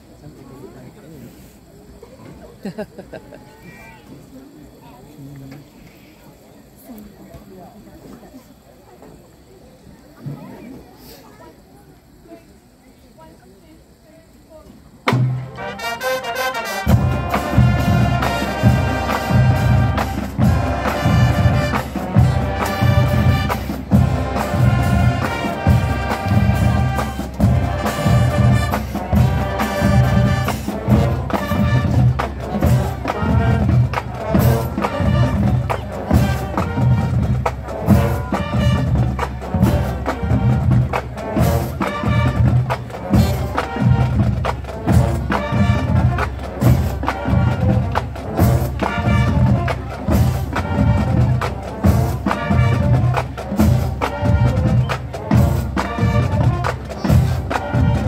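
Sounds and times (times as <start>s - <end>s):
drums beating: 15.0s - 58.0s
brass and winds playing: 15.3s - 58.0s.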